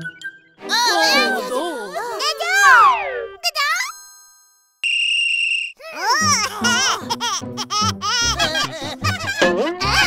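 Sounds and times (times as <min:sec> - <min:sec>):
cartoon voices cheering and laughing: 0:00.7 - 0:03.9, 0:05.8 - 0:10.0.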